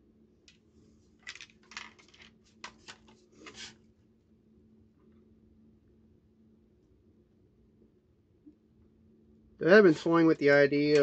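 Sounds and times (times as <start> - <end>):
rifle handling clicks and rustles: 1.2 - 3.7.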